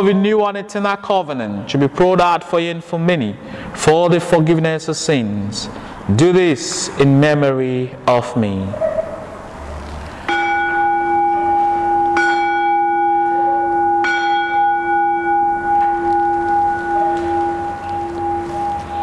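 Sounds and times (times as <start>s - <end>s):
bell ringing: 10.3s - 19.0s.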